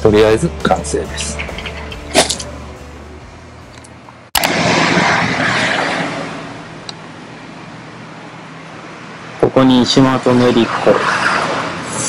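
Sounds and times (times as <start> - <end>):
car passing by: 10.3 - 12.0.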